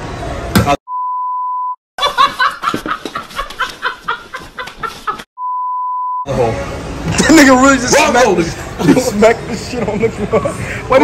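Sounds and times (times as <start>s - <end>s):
test tone beep: 0.9s - 1.8s, 5.4s - 6.3s
person laughing: 2.0s - 5.3s.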